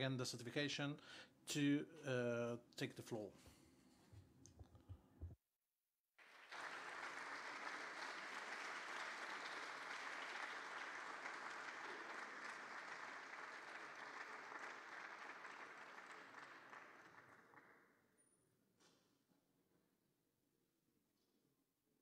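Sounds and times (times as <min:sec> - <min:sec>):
audience applauding: 0:06.2 - 0:17.8.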